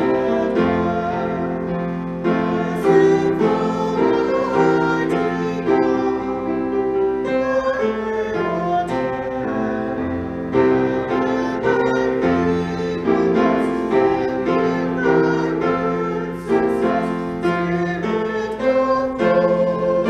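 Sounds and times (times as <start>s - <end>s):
hymn played on piano: 0.0s - 20.0s.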